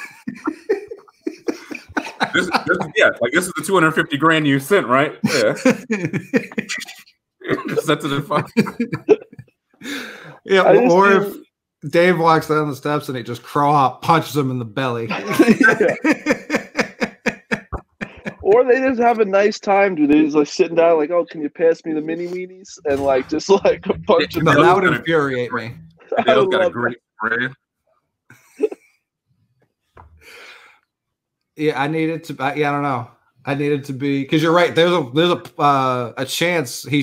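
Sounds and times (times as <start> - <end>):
men laughing hard: 0.0 - 4.0, 5.2 - 6.7, 7.4 - 11.3, 15.1 - 18.6, 24.3 - 26.8.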